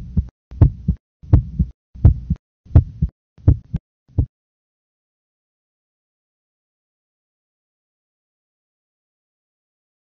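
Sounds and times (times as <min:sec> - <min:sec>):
human heartbeat: 0:00.0 - 0:04.3.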